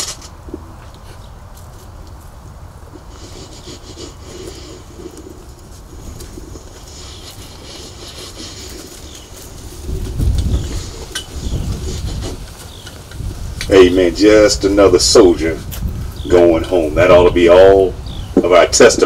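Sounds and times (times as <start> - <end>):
birds calling faintly: 0.0 - 19.0
rumbling thumps on microphone: 9.7 - 13.7.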